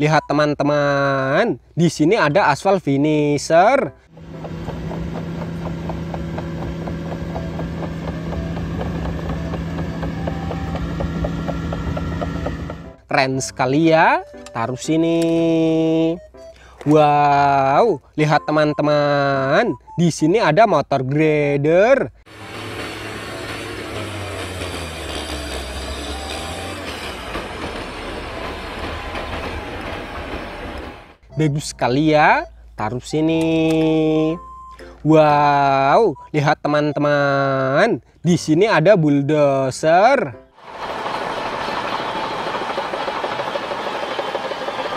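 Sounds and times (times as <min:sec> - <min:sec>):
diesel engine drone: 0:04.0 - 0:13.0, 0:22.2 - 0:32.8, 0:40.6 - 0:44.9
paver machine hum: 0:04.2 - 0:13.0, 0:22.3 - 0:31.2, 0:40.6 - 0:44.9
broad rushing noise: 0:40.6 - 0:44.9.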